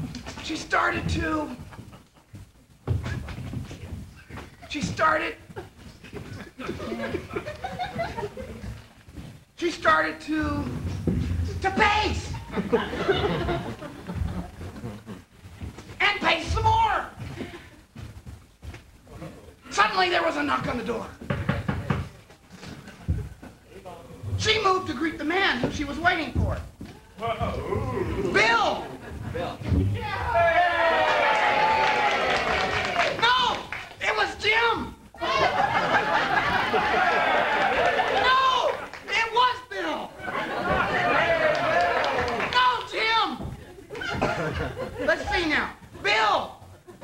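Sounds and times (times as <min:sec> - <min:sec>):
knocking on a door: 0:21.2 - 0:22.2
people talking over one another: 0:27.2 - 0:31.1, 0:36.9 - 0:43.6.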